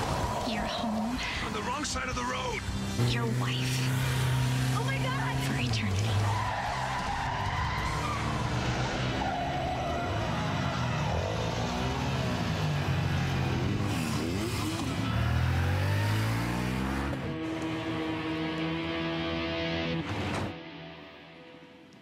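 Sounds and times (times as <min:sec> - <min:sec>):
car engine revving: 0:00.0 - 0:20.5.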